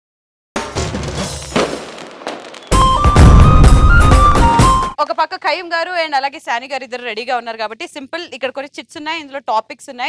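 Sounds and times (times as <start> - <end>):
sudden loud hit: 2.7 - 4.9
title jingle music with heavy bass: 2.8 - 4.9.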